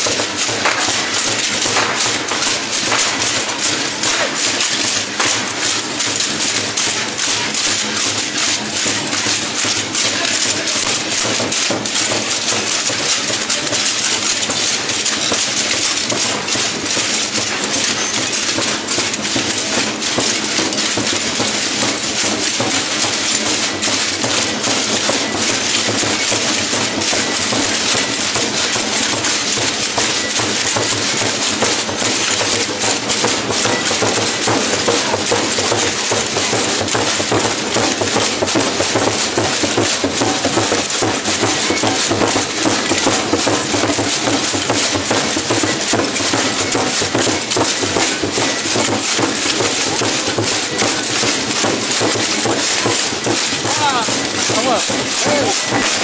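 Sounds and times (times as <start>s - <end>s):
dense rattling of rattles: 0.0s - 56.0s
drum beaten with a stick: 0.0s - 56.0s.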